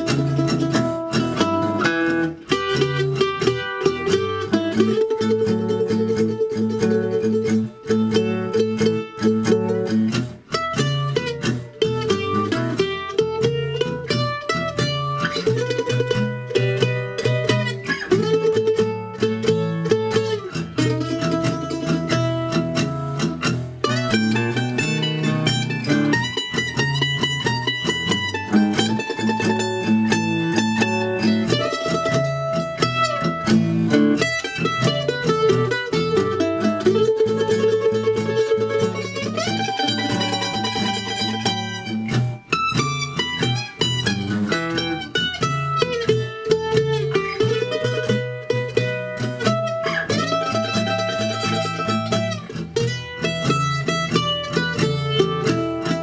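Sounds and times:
backing track bass and rhythm: 0.0s - 56.0s
mandolin playing blues lines: 0.0s - 56.0s.

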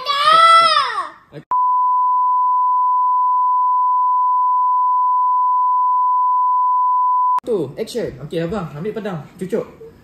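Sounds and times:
steady test tone beep: 1.5s - 7.4s.

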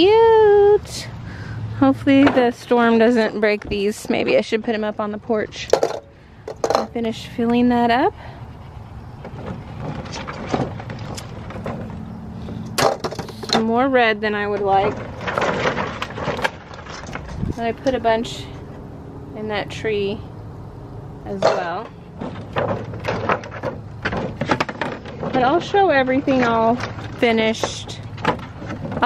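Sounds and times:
ornaments clicking and knocking: 5.7s - 7.0s.

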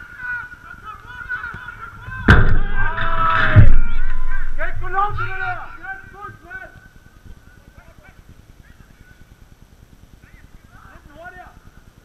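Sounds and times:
distant players shouting: 0.0s - 6.9s
low microphone rumble: 1.8s - 6.1s.

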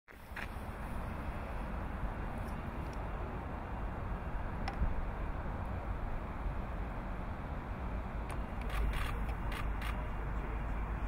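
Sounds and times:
low outdoor rumble: 0.1s - 11.0s.

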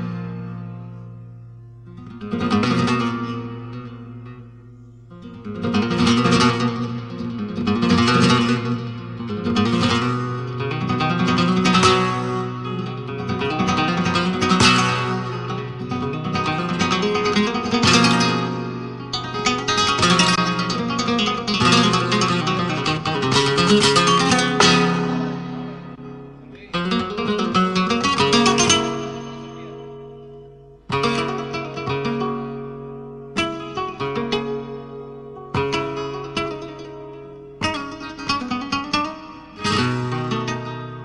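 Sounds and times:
flamenco guitar strummed chords: 0.0s - 41.0s.

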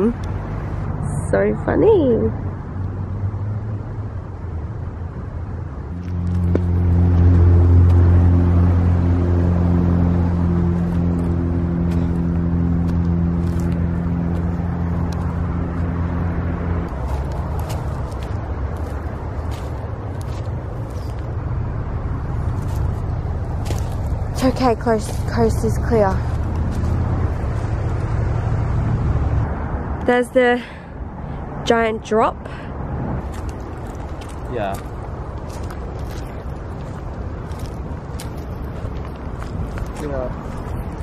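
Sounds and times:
heavy vehicle engine droning: 0.0s - 41.0s
road traffic rumbling: 0.0s - 41.0s
footsteps on dry leaves: 10.5s - 21.4s, 22.4s - 25.3s, 26.2s - 28.0s, 33.2s - 41.0s.

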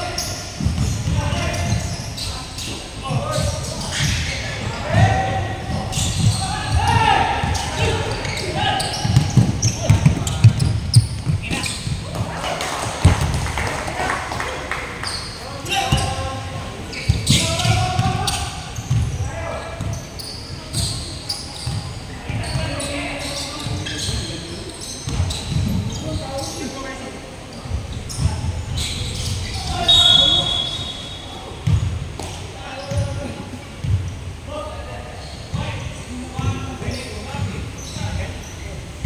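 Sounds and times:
players calling out: 0.0s - 32.0s
basketball bouncing on wooden floor: 9.0s - 12.0s, 17.1s - 18.2s.

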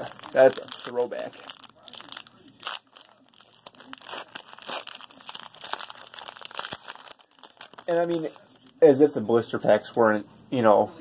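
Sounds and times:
foil wrapper crinkling and tearing: 0.0s - 9.0s.

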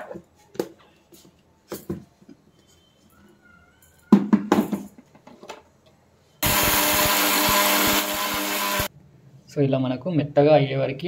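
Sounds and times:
mixer grinder motor running: 6.4s - 8.9s.

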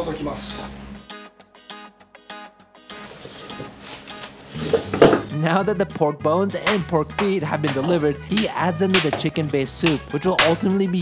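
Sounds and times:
background music: 0.0s - 11.0s
plastic bag crinkling: 2.9s - 4.9s.

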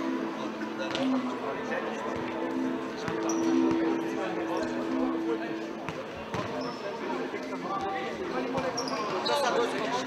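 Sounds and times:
voices in a hall: 0.0s - 10.0s
ball kicked and bouncing: 5.9s - 6.6s.

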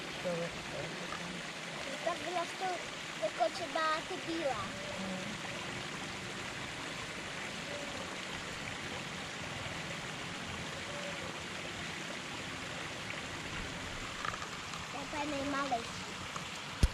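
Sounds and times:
water trickling into pond: 0.0s - 16.9s.

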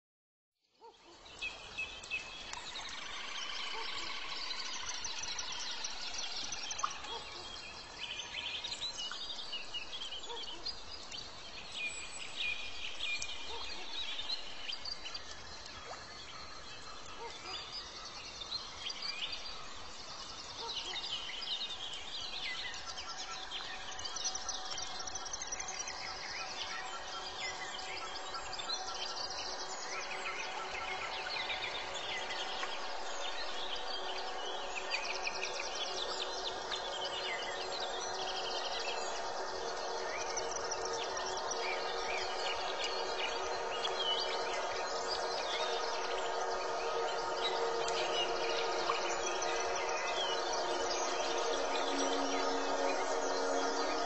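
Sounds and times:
steady background hiss: 1.2s - 54.0s.

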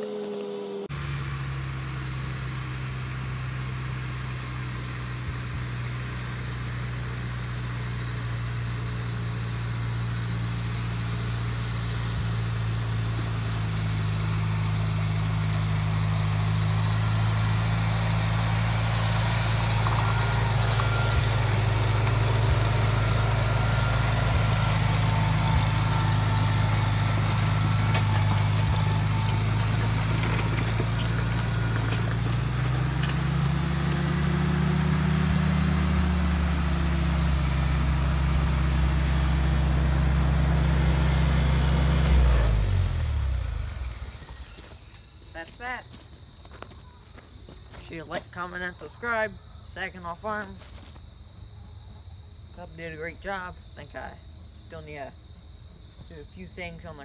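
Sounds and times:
tractor engine running: 0.0s - 51.0s.

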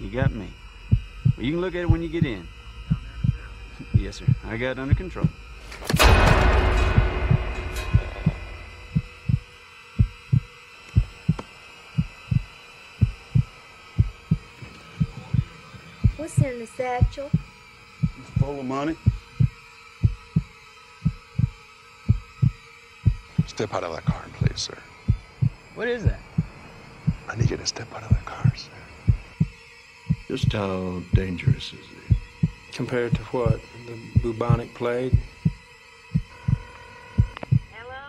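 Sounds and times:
heartbeat thumps: 0.0s - 37.7s
faint steady drone: 0.0s - 38.0s.

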